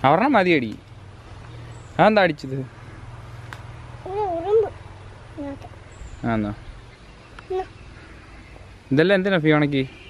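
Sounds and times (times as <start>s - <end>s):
high wavering vocal call: 4.0s - 4.8s, 5.4s - 5.8s, 7.5s - 7.8s.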